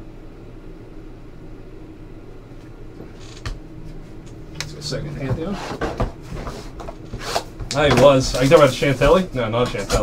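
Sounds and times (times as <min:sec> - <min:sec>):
steady low hum with hiss: 0:00.0 - 0:10.0.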